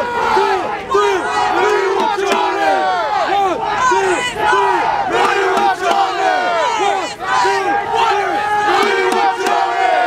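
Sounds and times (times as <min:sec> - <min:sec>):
crowd chanting and calling out: 0:00.0 - 0:10.0.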